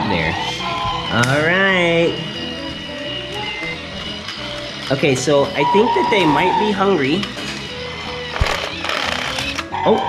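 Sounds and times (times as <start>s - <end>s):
background music: 0.0s - 10.0s
toy train rattling whirr: 0.2s - 9.7s.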